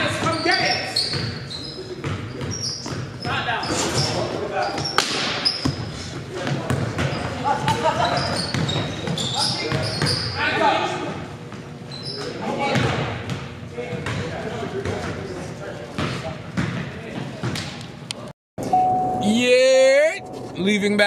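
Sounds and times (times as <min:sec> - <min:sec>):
sneaker squeaks: 0:00.0 - 0:10.6, 0:11.5 - 0:15.2
basketballs bouncing on wooden floor: 0:02.0 - 0:03.4, 0:04.8 - 0:10.2, 0:12.7 - 0:15.2, 0:16.0 - 0:17.7.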